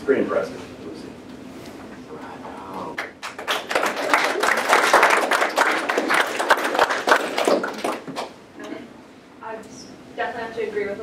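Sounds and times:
audience clapping: 2.9s - 8.4s.

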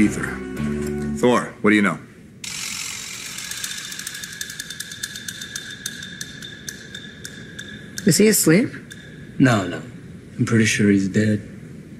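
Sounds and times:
small motor whining and ticking: 2.4s - 5.8s.

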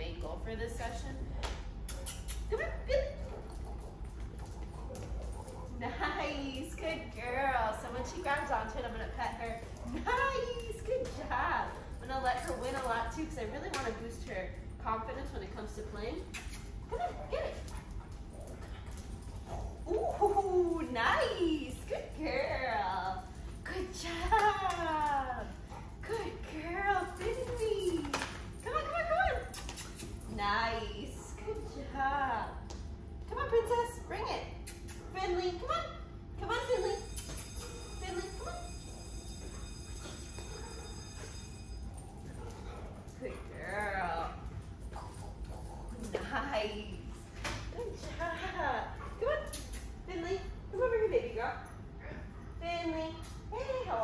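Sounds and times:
low room hum: 0.0s - 54.0s.

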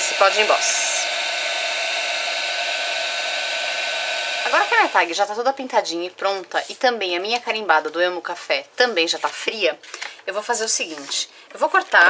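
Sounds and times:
heat gun blowing with whine: 0.0s - 5.2s.

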